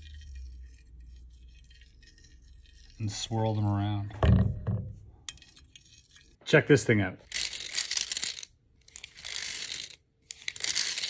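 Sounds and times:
magnet rattling against glass dish: 0:07.2 - 0:11.0.

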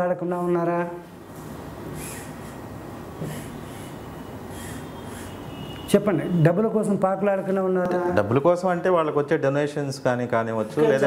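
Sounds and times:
faint room noise: 0:00.0 - 0:11.0
man breathing through nose: 0:01.9 - 0:05.8.

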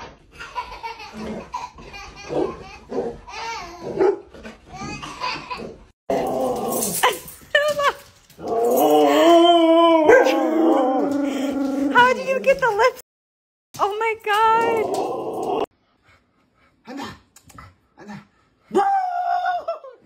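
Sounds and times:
huskies howling and talking: 0:14.3 - 0:15.7.

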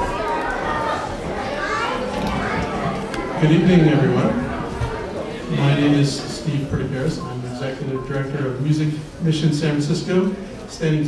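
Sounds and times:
children's voices: 0:00.0 - 0:08.0
audience chatter: 0:00.0 - 0:11.0.

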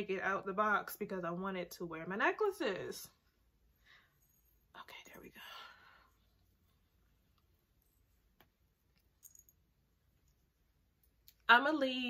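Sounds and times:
faint metallic chain clinks: 0:03.9 - 0:05.3, 0:08.9 - 0:10.4.

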